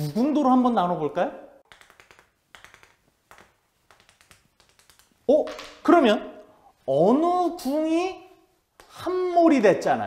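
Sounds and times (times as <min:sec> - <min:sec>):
chalk tapping on chalkboard: 0:01.6 - 0:05.7.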